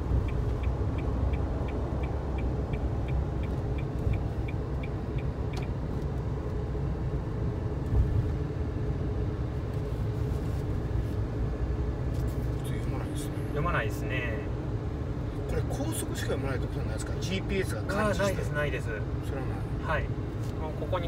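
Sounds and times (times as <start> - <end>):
turn signal ticking: 0.0 - 6.3
car road and engine rumble: 0.0 - 21.0.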